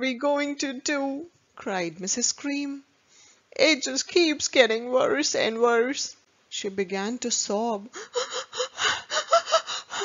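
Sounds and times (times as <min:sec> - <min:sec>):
person sobbing: 0:07.9 - 0:10.0.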